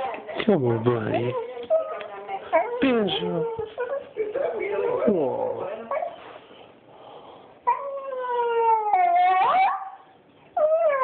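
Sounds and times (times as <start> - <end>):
small dog whining: 1.3 - 4.1, 7.6 - 11.0.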